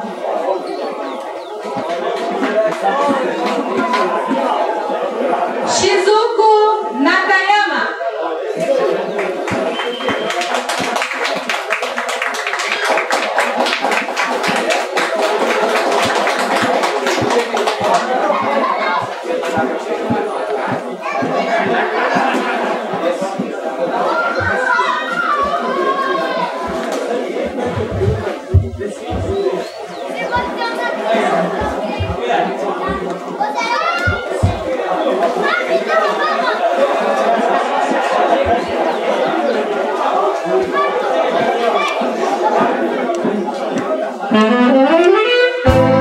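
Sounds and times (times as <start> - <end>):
crowd chatter: 0.0 - 46.0
audience clapping: 9.1 - 19.6
children's voices: 14.5 - 45.4
short low thumps: 27.4 - 29.8, 31.6 - 32.3, 34.1 - 34.7.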